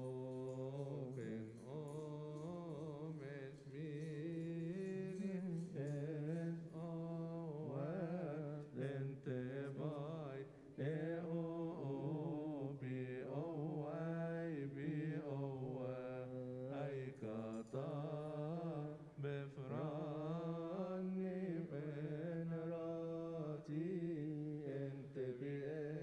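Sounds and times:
man chanting: 0:00.0 - 0:26.0.

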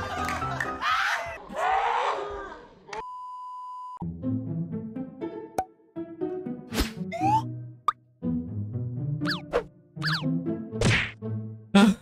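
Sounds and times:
cartoon pop: 0:10.8 - 0:11.2.

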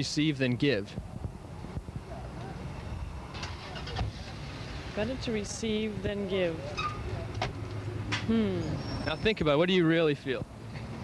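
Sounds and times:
street traffic rumble: 0:00.0 - 0:11.0.

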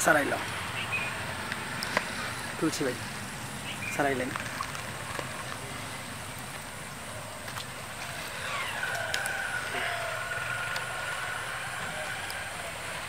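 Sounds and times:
distant engine rumble: 0:00.0 - 0:13.0.

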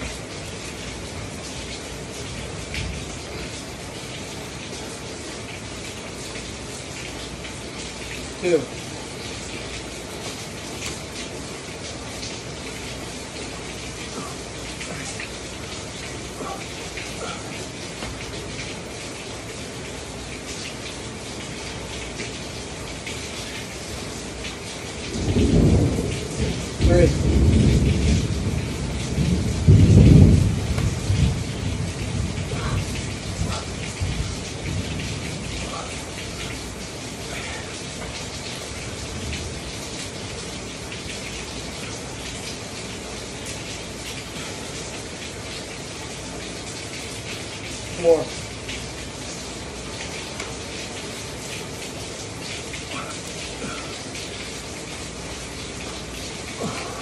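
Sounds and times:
heavy rain pouring: 0:00.0 - 0:57.0
roll of thunder: 0:25.1 - 0:35.6.

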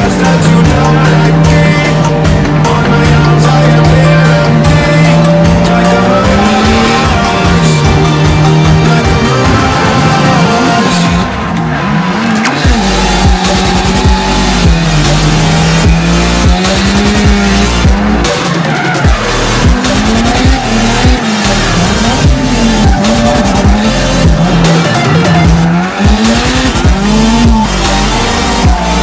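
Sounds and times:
car engine revving: 0:00.0 - 0:29.0
electronic background music: 0:00.0 - 0:29.0
tyres squealing: 0:00.0 - 0:29.0.

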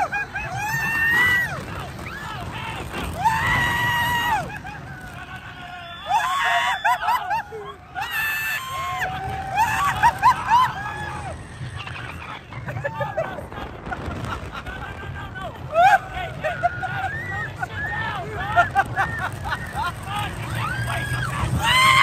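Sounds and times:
riders screaming: 0:00.0 - 0:22.0
low rumble: 0:08.7 - 0:22.0.

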